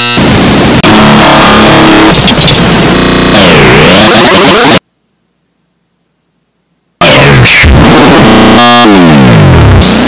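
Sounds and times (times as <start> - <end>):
sliding synthesizer tones: 0.0 - 4.8, 7.0 - 10.0
distorted electronic noise: 0.0 - 4.9, 7.0 - 10.0.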